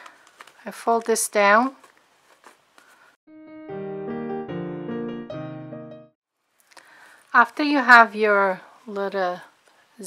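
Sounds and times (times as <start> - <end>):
solo piano music: 3.3 - 6.2.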